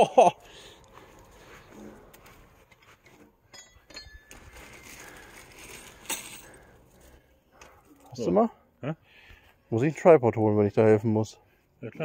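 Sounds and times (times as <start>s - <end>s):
metal screws and bolts clinking: 3.4s - 6.8s.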